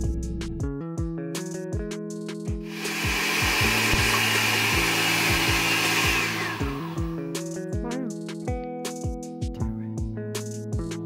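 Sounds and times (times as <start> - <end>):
background music with steady beat: 0.0 - 11.0
countertop blender running: 2.7 - 7.1.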